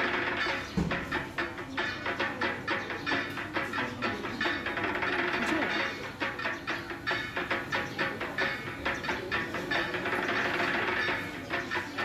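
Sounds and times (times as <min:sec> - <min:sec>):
fast even percussion: 0:00.0 - 0:12.0.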